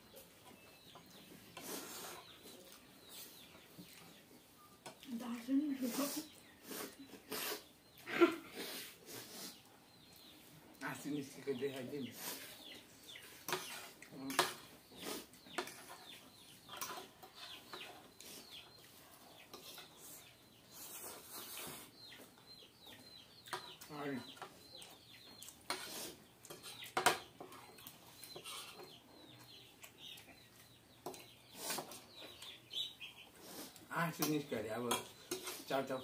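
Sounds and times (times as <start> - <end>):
cutlery clinking on plates: 13.4 - 14.7, 25.6 - 28.8, 34.9 - 35.7.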